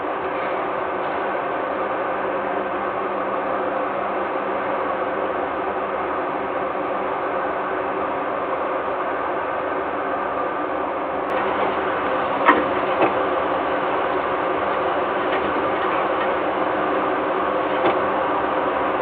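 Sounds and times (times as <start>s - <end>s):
machinery hum: 0.0s - 19.0s.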